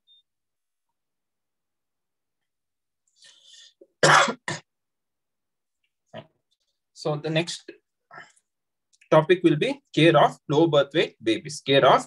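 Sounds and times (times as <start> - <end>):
man clearing his throat: 4.0 - 4.7.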